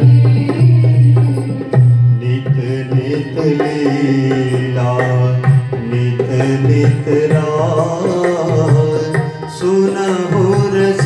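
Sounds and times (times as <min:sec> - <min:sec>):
hand drum beating steady rhythm: 0:00.0 - 0:11.0
harmonium melody over drone: 0:00.0 - 0:11.0.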